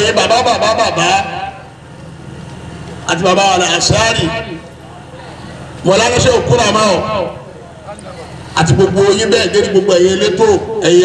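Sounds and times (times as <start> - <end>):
steady low hum: 0.0 - 11.0
man speaking into a microphone: 3.0 - 4.7, 5.8 - 11.0.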